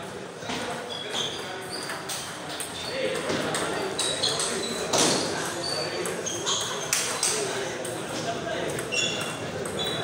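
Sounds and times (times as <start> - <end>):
table tennis balls pinging: 0.5 - 10.0.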